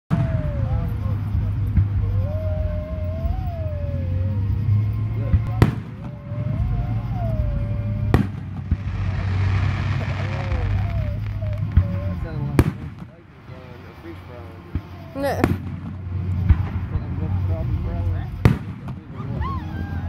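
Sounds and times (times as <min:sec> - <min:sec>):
low background noise: 0:00.1 - 0:20.0
fireworks bursting: 0:05.3 - 0:19.4.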